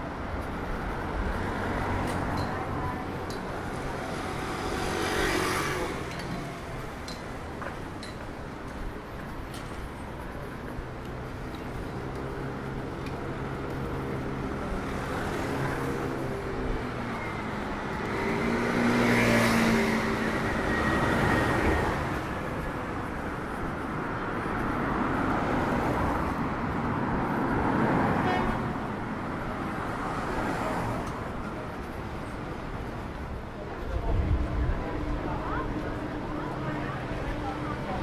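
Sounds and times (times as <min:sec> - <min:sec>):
cars passing: 0:00.0 - 0:38.0.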